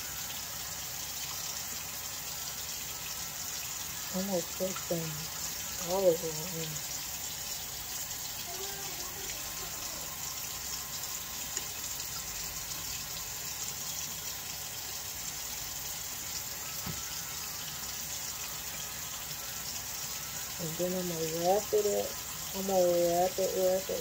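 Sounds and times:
tap water running into sink: 0.0 - 24.0.

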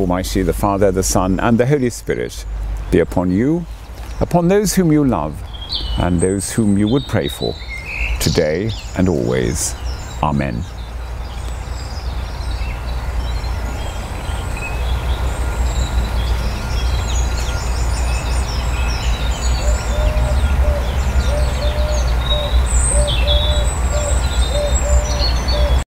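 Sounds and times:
small birds chirping: 0.0 - 25.8.

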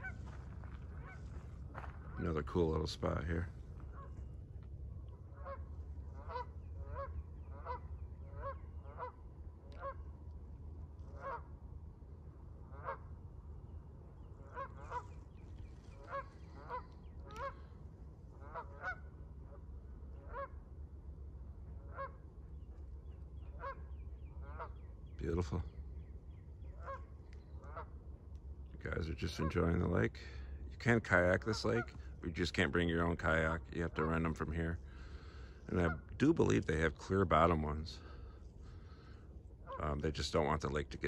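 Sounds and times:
geese honking: 0.0 - 4.4, 5.0 - 11.8, 12.6 - 41.0
steady low rumble: 0.0 - 41.0.

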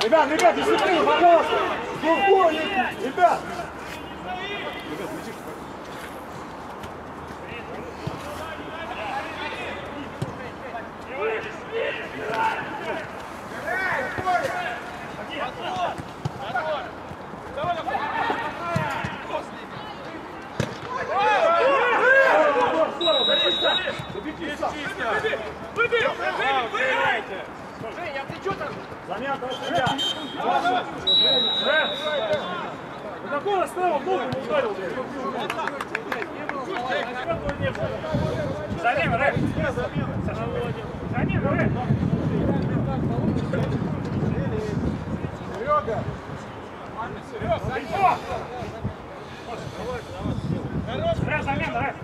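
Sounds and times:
players shouting and calling: 0.0 - 52.0.

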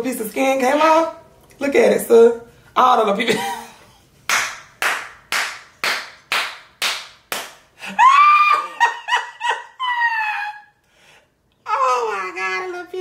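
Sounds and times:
hands clapping slowly: 4.3 - 7.7
high-pitched laughter: 8.0 - 10.8.

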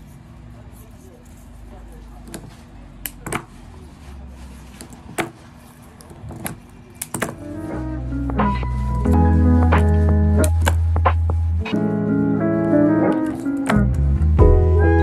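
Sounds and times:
music with heavy bass: 7.7 - 13.1, 13.7 - 15.0.

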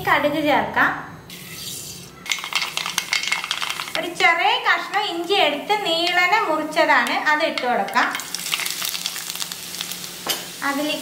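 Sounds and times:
ginger sizzling in hot oil: 1.6 - 11.0.

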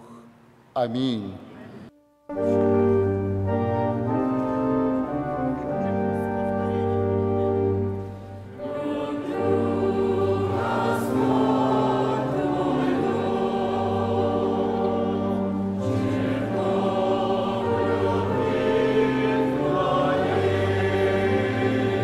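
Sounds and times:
choir and congregation singing hymn: 2.3 - 22.0.

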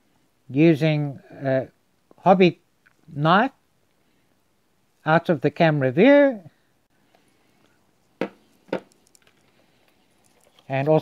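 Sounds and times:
plastic gear knocking on wood: 8.2 - 9.3
small handling clicks: 8.8 - 10.9.

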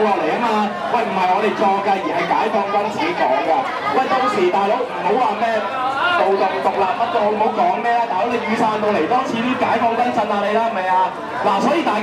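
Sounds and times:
man speaking through amplifier: 0.0 - 12.0
voices chattering: 0.0 - 12.0.

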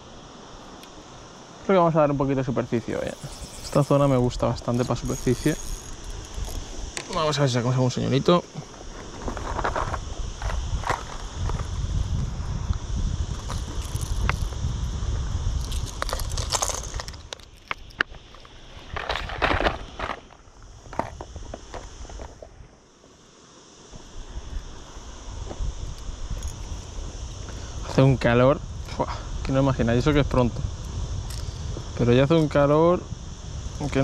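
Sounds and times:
fishing gear knocks and rustles: 15.6 - 22.4.

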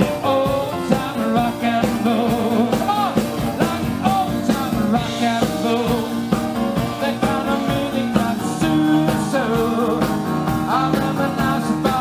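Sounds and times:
rock and roll band playing: 0.0 - 12.0
saxophone lead line: 0.0 - 12.0.

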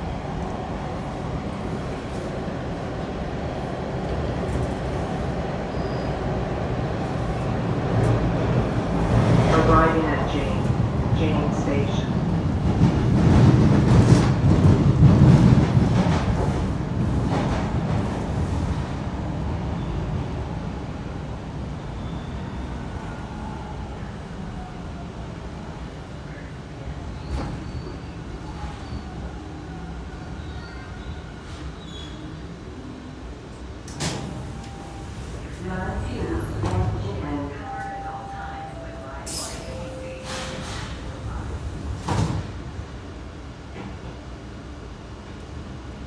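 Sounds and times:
subway train wheels rumbling: 0.0 - 46.0.

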